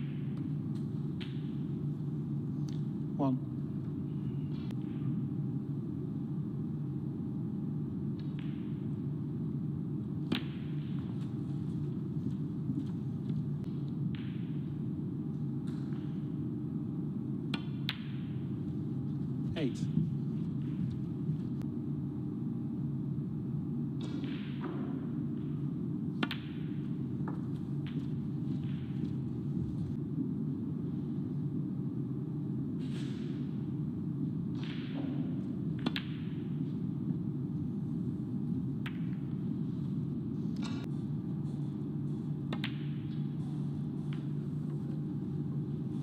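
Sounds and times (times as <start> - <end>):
low hum: 0.0 - 46.0.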